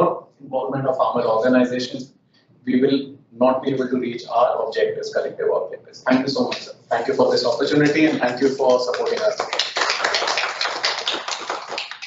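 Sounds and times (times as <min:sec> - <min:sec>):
people applauding: 0:07.2 - 0:12.0.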